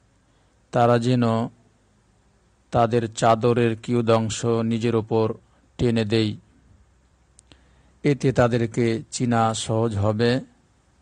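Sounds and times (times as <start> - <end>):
man lecturing: 0.8 - 1.6, 2.8 - 6.5, 8.0 - 10.6.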